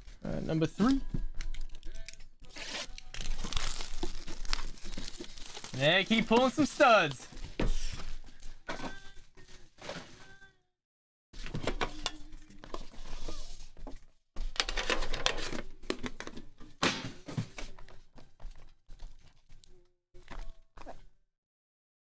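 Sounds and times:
cardboard box packaging handled: 0:02.5 - 0:07.2.

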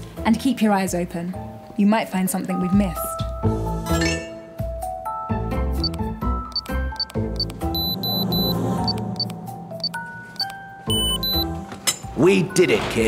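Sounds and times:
background music with held notes: 0:00.0 - 0:13.0
keypad button beeps: 0:05.8 - 0:11.5.

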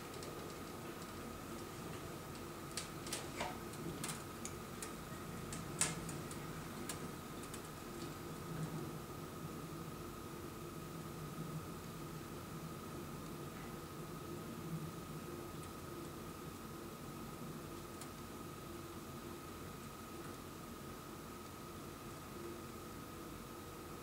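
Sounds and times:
clicks and taps of tubing handling: 0:00.1 - 0:08.1.

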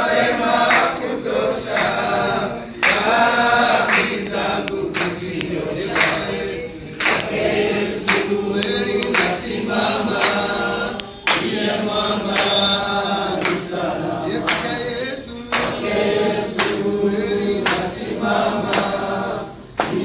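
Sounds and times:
crowd singing a hymn: 0:00.0 - 0:20.0.

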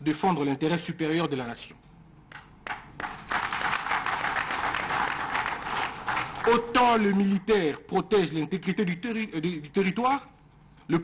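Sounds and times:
audience applauding: 0:02.6 - 0:07.1.

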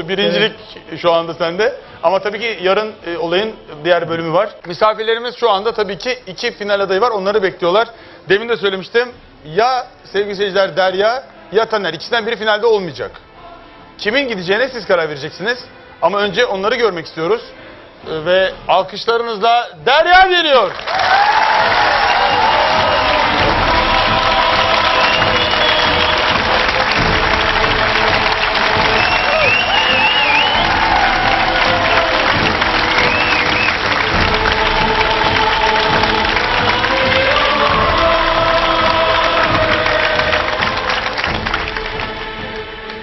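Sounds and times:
music: 0:00.0 - 0:43.0
audience applauding and cheering: 0:20.6 - 0:43.0.

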